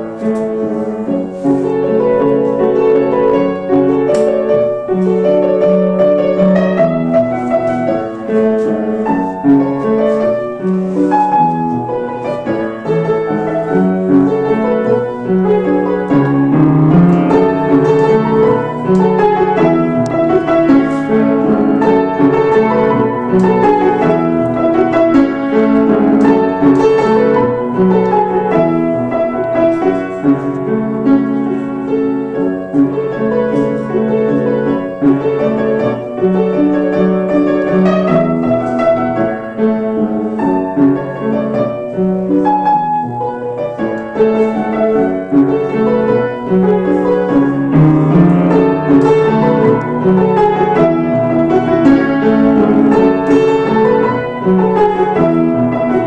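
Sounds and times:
solo upright piano: 0:00.0 - 0:56.0.

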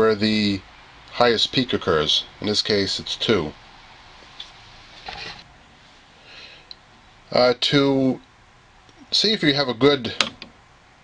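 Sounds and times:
room background hiss: 0:00.0 - 0:11.0.

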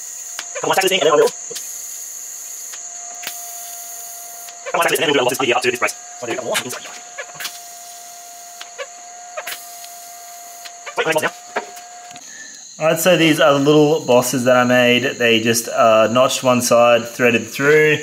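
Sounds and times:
welding arc hissing crackle: 0:00.0 - 0:12.7
faint steady whine: 0:00.0 - 0:18.0.

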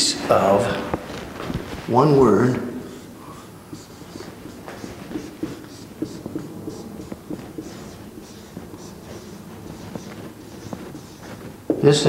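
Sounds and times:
marker squeaking on whiteboard: 0:00.9 - 0:12.0.

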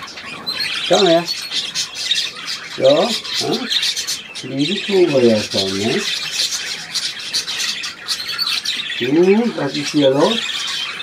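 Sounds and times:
budgerigars chattering: 0:00.0 - 0:11.0.

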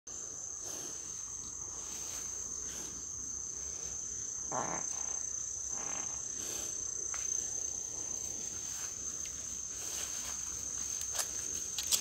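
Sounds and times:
high-pitched insect trill: 0:00.1 - 0:12.0.

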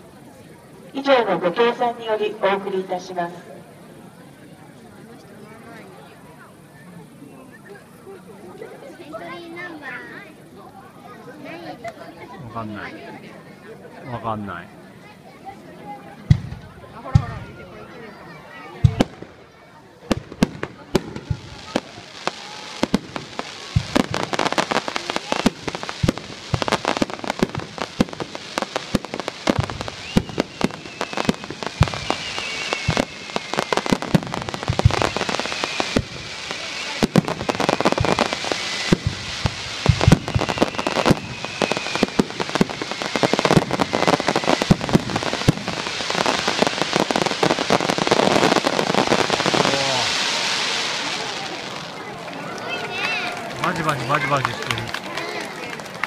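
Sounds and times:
fireworks bangs and crackles: 0:15.4 - 0:56.0.

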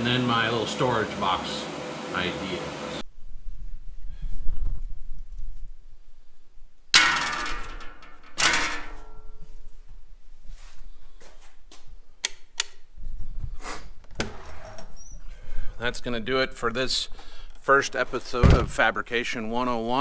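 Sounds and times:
loud metal clangs: 0:07.0 - 0:09.5.

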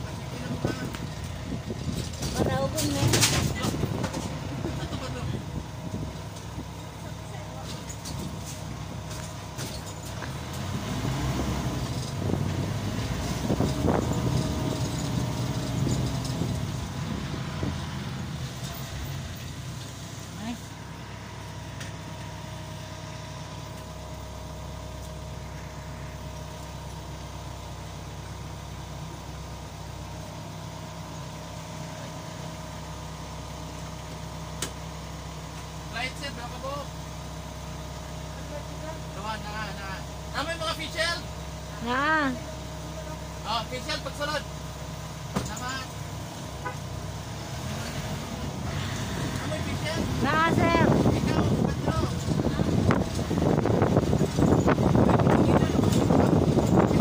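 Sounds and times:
road noise inside cabin: 0:00.0 - 0:57.0
vehicle engine: 0:00.0 - 0:57.0.

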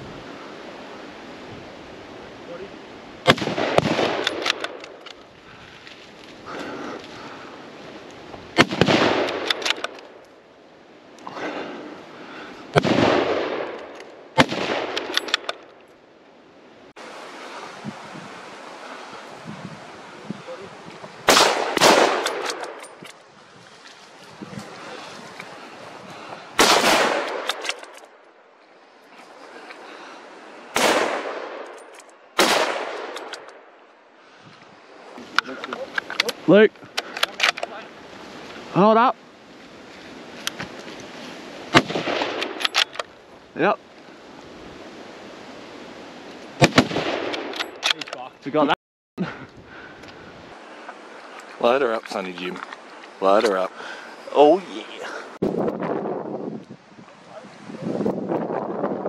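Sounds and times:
rifle shots with echo: 0:03.3 - 0:04.8, 0:08.6 - 0:09.6, 0:14.4 - 0:15.1, 0:21.3 - 0:22.8, 0:26.6 - 0:27.6, 0:30.8 - 0:31.7, 0:32.4 - 0:33.4, 0:41.7 - 0:42.6.

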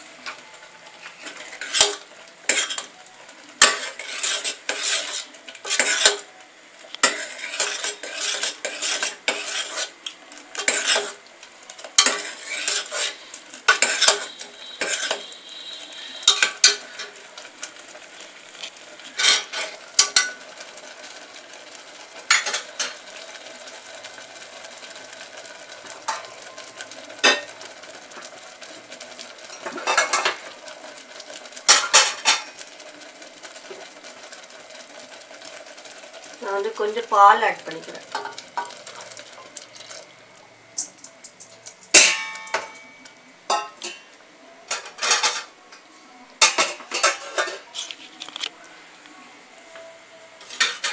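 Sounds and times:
porridge simmering and bubbling: 0:00.0 - 0:50.9
ladle scraping metal pot: 0:01.0 - 0:02.9, 0:03.6 - 0:06.3, 0:07.0 - 0:11.2, 0:11.9 - 0:21.2, 0:29.4 - 0:30.5, 0:46.4 - 0:48.5.

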